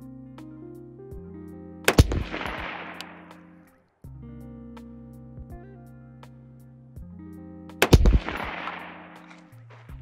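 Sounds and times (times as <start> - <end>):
background music: 0.0 - 10.0
rifle shot with echo: 1.9 - 3.4, 7.8 - 9.5.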